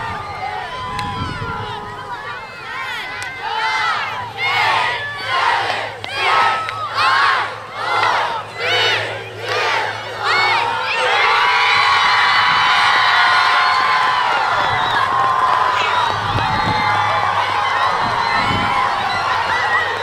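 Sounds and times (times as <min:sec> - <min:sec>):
crowd cheering and screaming: 0:00.0 - 0:20.0
crowd chanting: 0:01.6 - 0:20.0.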